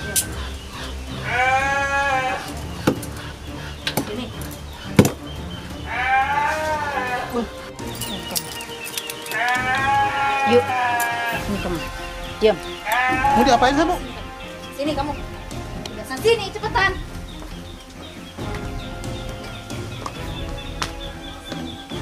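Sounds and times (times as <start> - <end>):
drawn-out pitched cries: 0.0 - 7.8, 8.6 - 22.0
sharp smacks: 3.9 - 5.3.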